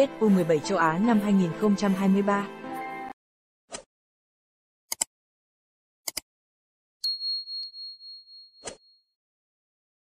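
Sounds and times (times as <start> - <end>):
notification bell ding: 7.0 - 8.9.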